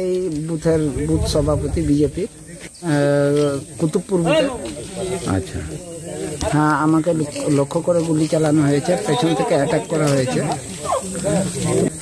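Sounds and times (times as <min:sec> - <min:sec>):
man talking: 0:00.0 - 0:11.6.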